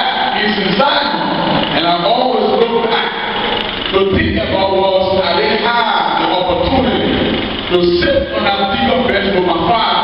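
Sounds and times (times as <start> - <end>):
man chanting over loudspeakers: 0.0 - 10.0.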